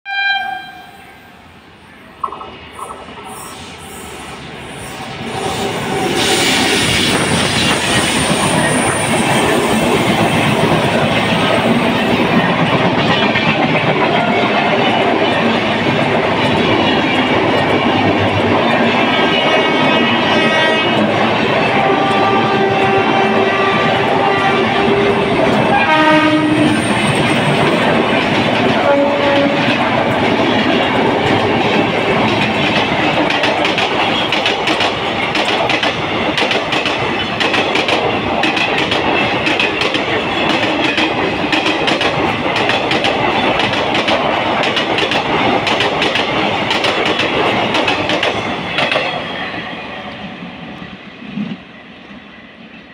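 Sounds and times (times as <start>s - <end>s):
locomotive horn: 0.1s - 1.3s, 20.2s - 21.0s, 21.6s - 26.9s, 28.8s - 29.8s
train wheels clattering on rails: 4.9s - 50.3s.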